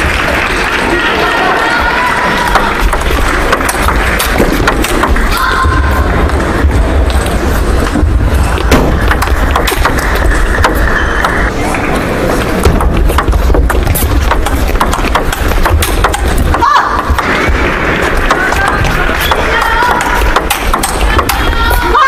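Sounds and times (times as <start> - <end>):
table tennis ball clicking: 12.6 - 17.3, 18.1 - 21.6
voices: 16.5 - 22.0.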